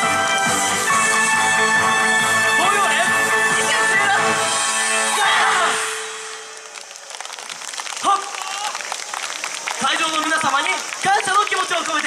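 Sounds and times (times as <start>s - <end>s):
crowd clapping: 6.2s - 12.0s.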